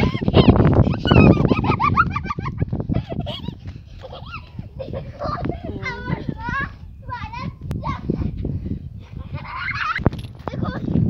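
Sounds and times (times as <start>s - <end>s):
child's high-pitched cries: 0.0s - 1.3s, 4.2s - 6.8s
wind on microphone: 0.0s - 11.0s.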